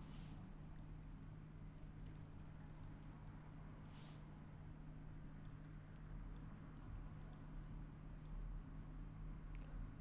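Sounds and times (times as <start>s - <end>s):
faint keyboard typing: 0.2s - 3.4s, 5.4s - 8.4s.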